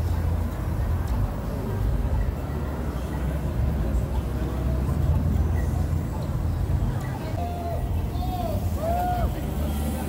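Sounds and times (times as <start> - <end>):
people's voices: 0.0 - 10.0
traffic: 0.0 - 10.0.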